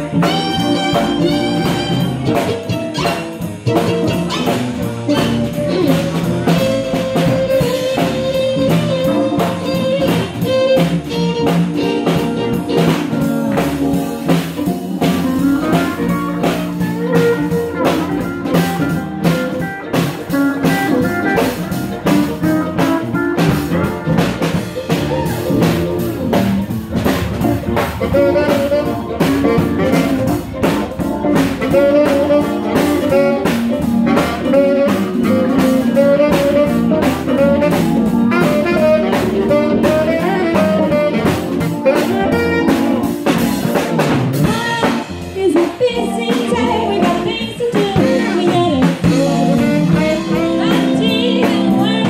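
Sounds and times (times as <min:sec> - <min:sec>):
steel guitar: 0:00.0 - 0:43.4
drums keeping a steady beat: 0:00.0 - 0:52.0
saxophone lead melody: 0:00.0 - 0:52.0
upright bass: 0:00.0 - 0:52.0.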